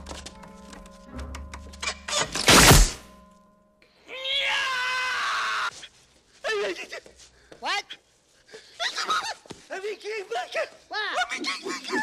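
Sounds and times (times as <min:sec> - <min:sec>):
man screaming high-pitched: 0:04.1 - 0:05.7.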